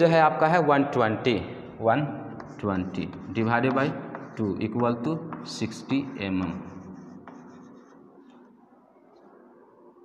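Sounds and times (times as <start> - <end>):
chalk scratching on a blackboard: 2.4 - 8.5.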